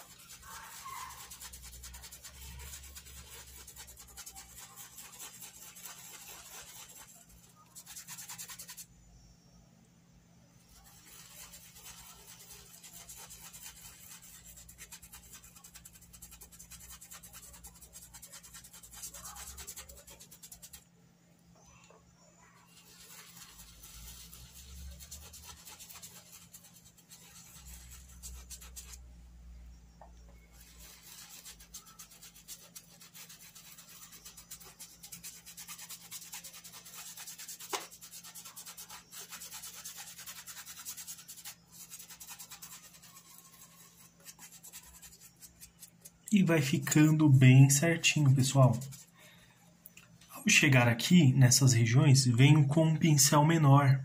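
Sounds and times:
paintbrush scrubbing fabric: 0.0s - 9.0s, 10.6s - 21.0s, 22.2s - 29.2s, 29.8s - 49.2s.

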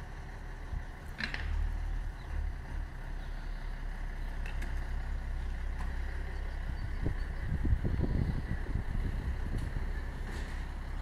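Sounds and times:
fire truck diesel engine rumbling: 0.0s - 11.0s.

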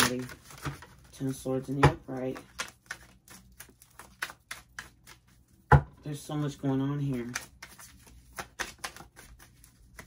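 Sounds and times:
cards being shuffled: 0.0s - 5.4s, 6.3s - 10.0s.

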